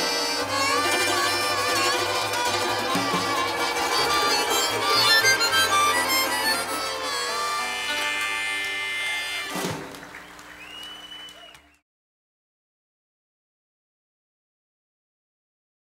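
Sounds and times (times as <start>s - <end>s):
fiddle: 0.0s - 9.6s
harmonica: 0.0s - 9.7s
acoustic string band playing: 0.0s - 9.9s.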